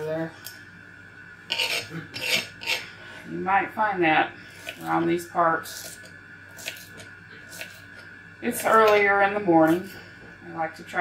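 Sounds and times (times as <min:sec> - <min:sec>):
knife cutting onion on board: 0:05.8 - 0:06.9.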